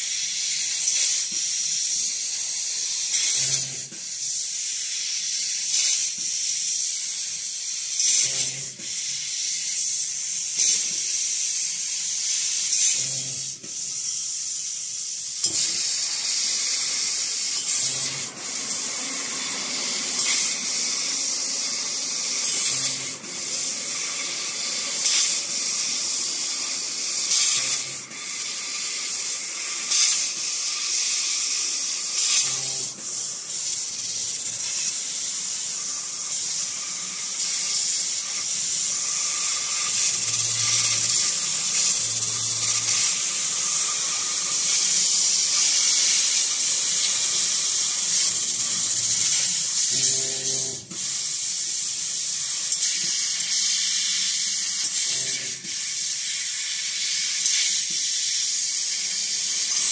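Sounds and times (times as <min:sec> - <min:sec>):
laser cutter gas jet hissing: 0:00.0 - 0:59.9.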